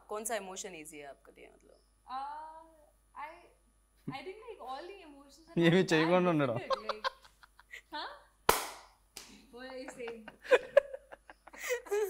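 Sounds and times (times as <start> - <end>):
people laughing: 6.6 - 7.8, 9.7 - 12.0
hand smack: 8.5 - 9.3.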